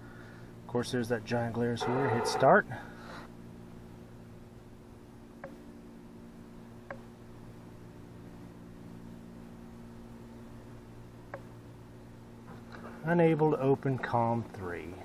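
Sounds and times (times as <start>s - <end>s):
low hum: 0.0s - 15.0s.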